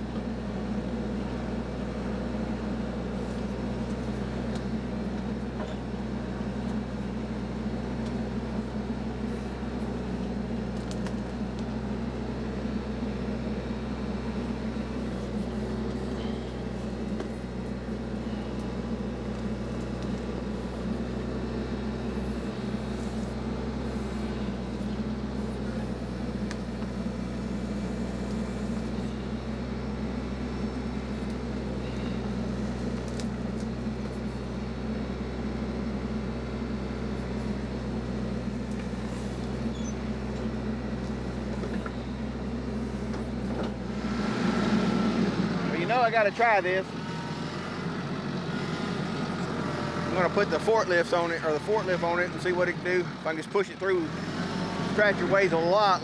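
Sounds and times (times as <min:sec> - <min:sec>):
tractor diesel engine running: 0:00.0 - 0:56.0.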